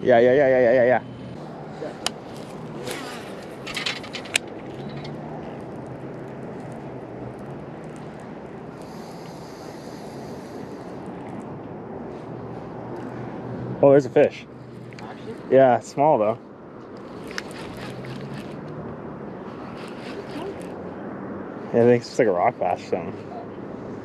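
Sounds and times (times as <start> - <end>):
continuous low hum: 0.0 - 24.0
fishing reel clicks: 17.0 - 18.6, 19.6 - 20.7
reel retrieving: 17.0 - 18.8, 19.5 - 20.8.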